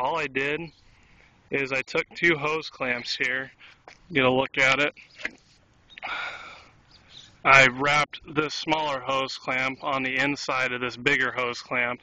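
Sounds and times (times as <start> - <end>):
breathy sniff: 6.0 - 6.8.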